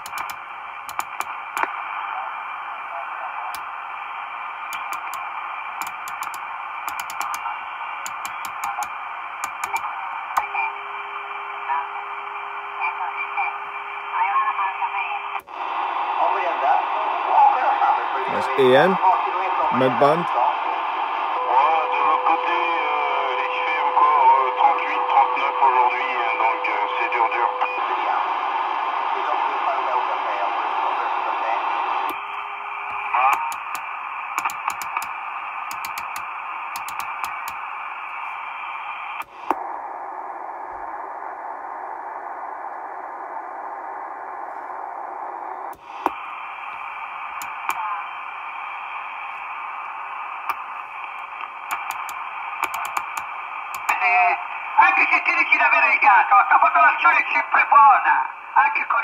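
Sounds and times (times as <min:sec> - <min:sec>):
clicks and crackle: 0:00.0 - 0:01.8, 0:04.7 - 0:10.5, 0:32.1 - 0:37.6, 0:50.4 - 0:54.0
radio static hiss: 0:00.0 - 0:59.0.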